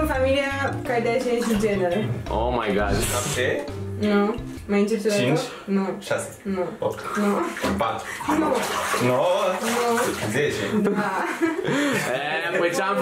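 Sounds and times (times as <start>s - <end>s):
water sloshing in bathtub: 0.9s - 2.0s, 6.8s - 11.5s
voices talking and laughing: 7.1s - 13.0s.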